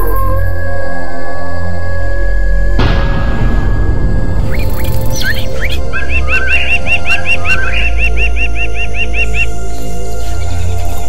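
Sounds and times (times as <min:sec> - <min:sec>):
low droning music: 0:00.0 - 0:11.0
birds chirping: 0:04.5 - 0:11.0.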